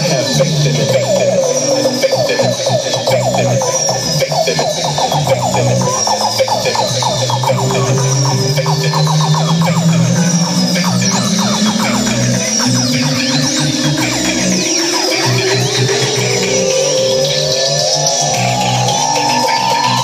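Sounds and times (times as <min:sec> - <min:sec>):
bass line: 0:00.0 - 0:20.0
high gliding tone: 0:00.0 - 0:20.0.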